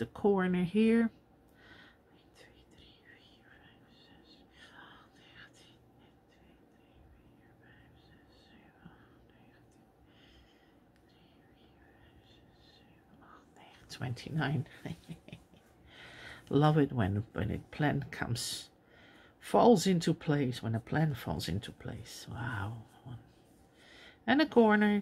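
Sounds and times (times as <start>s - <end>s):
woman whispering: 0.0s - 1.2s, 2.0s - 15.4s, 16.3s - 18.8s, 19.4s - 25.0s.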